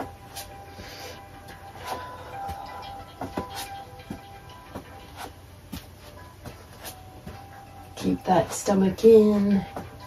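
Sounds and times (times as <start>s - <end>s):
faint background music: 0.0s - 10.0s
feet tapping on mat: 1.5s - 7.5s.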